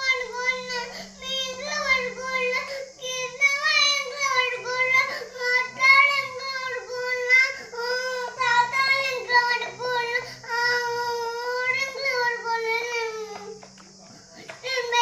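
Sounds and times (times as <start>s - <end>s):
child singing: 0.0s - 13.6s, 14.4s - 15.0s
faint low hum: 0.0s - 15.0s.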